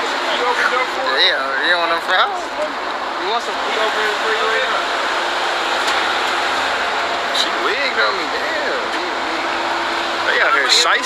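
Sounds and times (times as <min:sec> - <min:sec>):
outdoor traffic rush: 0:00.0 - 0:11.0.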